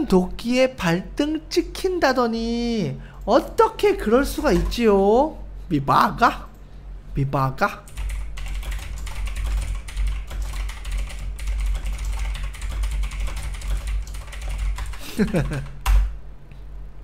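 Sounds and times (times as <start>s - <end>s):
fast typing on keyboard: 4.2s - 4.9s, 7.9s - 16.1s.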